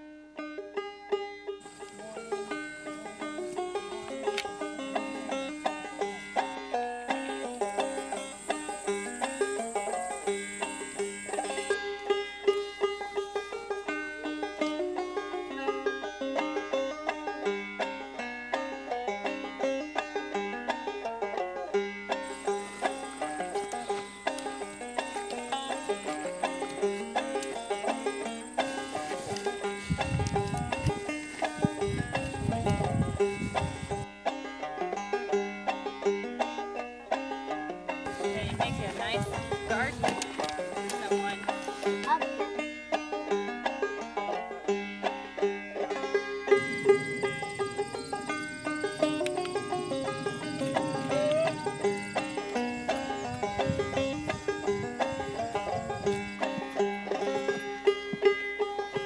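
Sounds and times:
banjo tune: 0.0 - 59.0.

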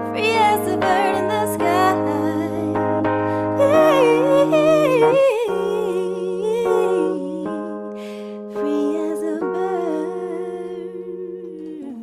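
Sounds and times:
sustained keyboard chords: 0.0 - 12.0
woman singing wordless melody: 0.0 - 12.0.

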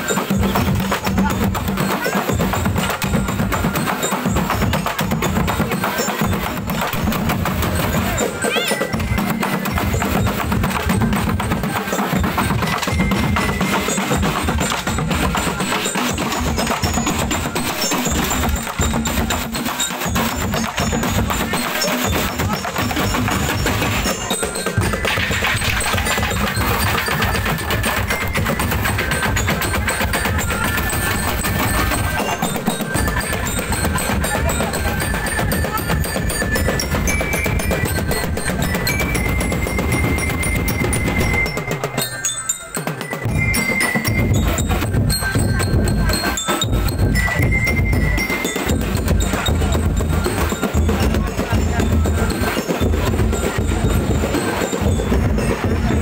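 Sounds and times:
bell-like notes ringing: 0.0 - 56.0
drums and barrels beating: 0.0 - 56.0.

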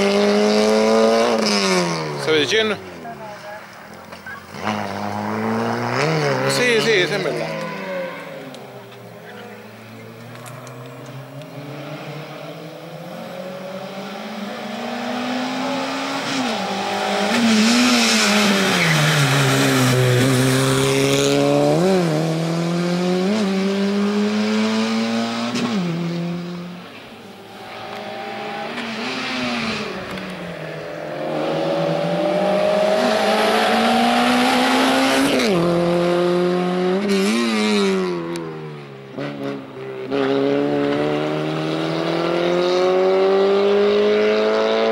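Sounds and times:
race car engine revving: 0.0 - 2.8, 4.2 - 44.9.

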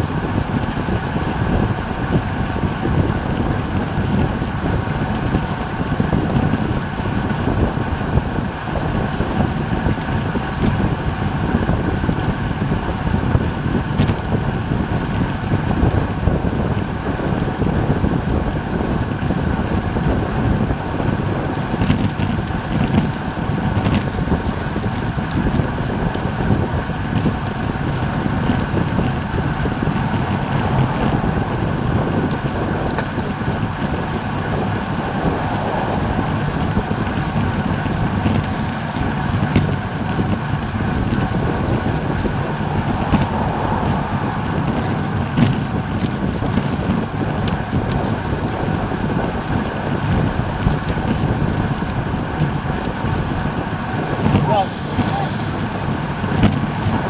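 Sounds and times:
tyre and road noise: 0.0 - 57.0
wind rushing over microphone: 0.0 - 57.0.

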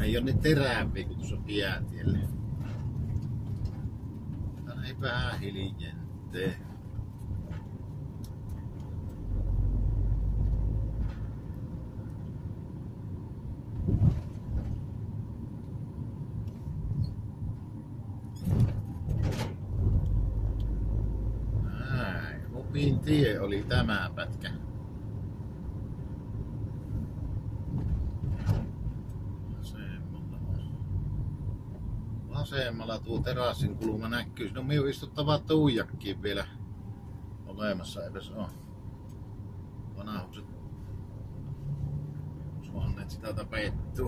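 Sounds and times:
tyre and engine rumble: 0.0 - 44.0.

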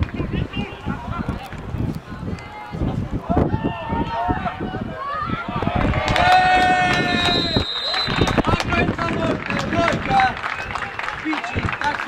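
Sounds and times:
wind on microphone: 0.0 - 12.0
people shouting and calling: 0.2 - 12.0.

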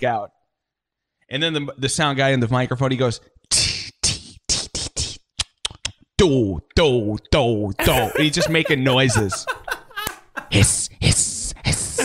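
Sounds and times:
man making hissing mouth sounds: 3.5 - 5.9, 10.5 - 12.0
tongue clicks: 4.6 - 6.0.

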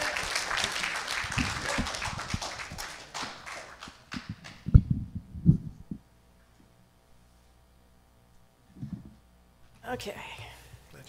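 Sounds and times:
audience applauding: 0.0 - 4.7
microphone handling thumps: 4.2 - 6.0, 8.7 - 9.2.

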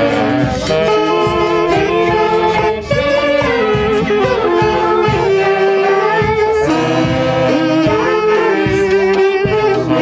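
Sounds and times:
drum kit steady beat: 0.0 - 10.0
saxophone melody: 0.0 - 10.0.

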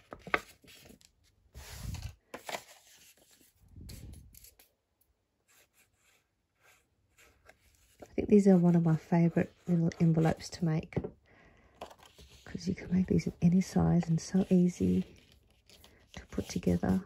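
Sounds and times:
paper envelope crinkling: 0.0 - 3.5, 14.0 - 17.0.

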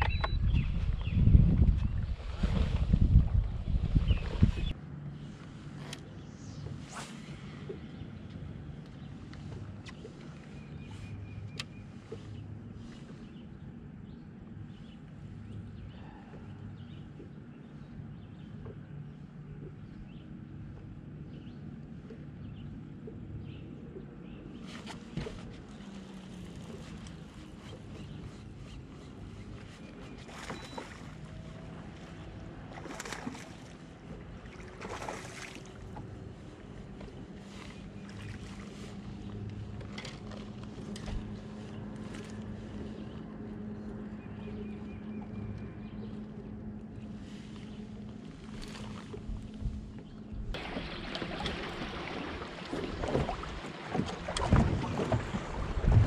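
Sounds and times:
wind buffeting microphone: 0.0 - 4.8, 49.2 - 56.0
choppy water: 0.0 - 56.0
clicks and knocks from fishing gear: 39.2 - 42.6.

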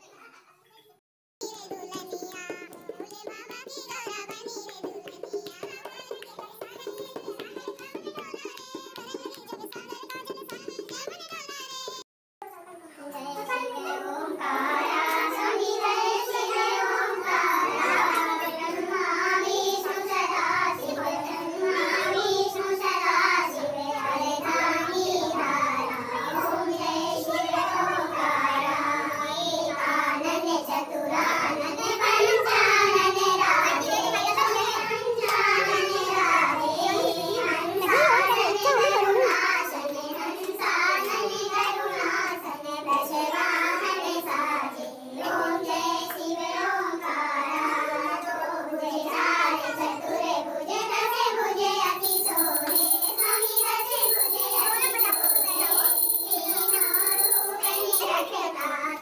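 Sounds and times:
women singing together: 13.9 - 59.0.

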